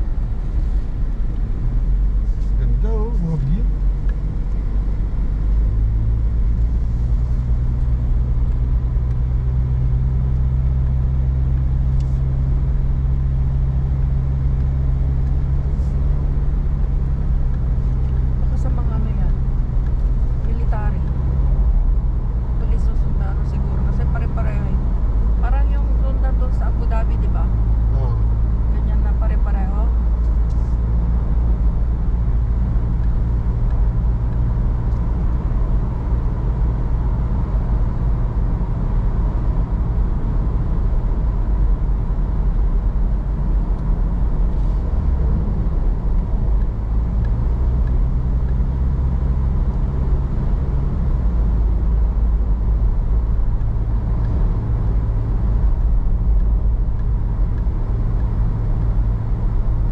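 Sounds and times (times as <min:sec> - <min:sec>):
car engine and road drone: 0:00.0 - 0:59.9.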